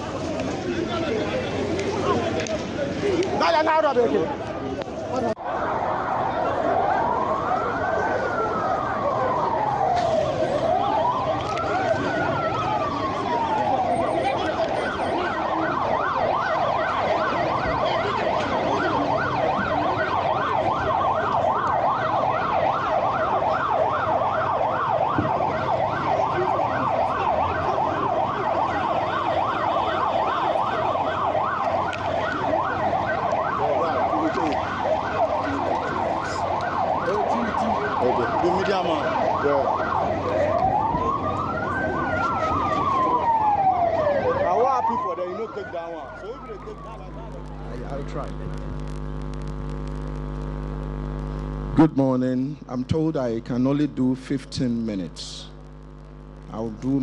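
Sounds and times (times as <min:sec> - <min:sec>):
vehicle siren: 0:00.0 - 0:57.0.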